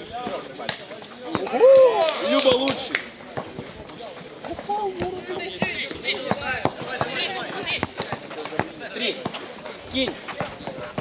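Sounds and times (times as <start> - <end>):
basketball bouncing: 4.5 - 9.4, 10.3 - 11.0.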